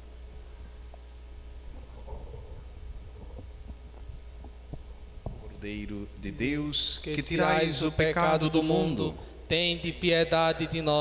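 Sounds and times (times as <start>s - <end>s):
low hum: 0.0s - 11.0s.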